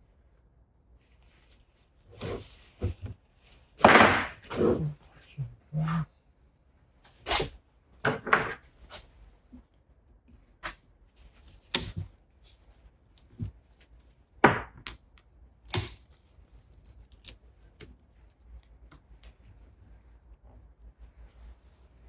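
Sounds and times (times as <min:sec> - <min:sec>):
pliers cracking dry wood: 0:11.6 - 0:12.1, 0:13.1 - 0:14.1, 0:15.6 - 0:18.4.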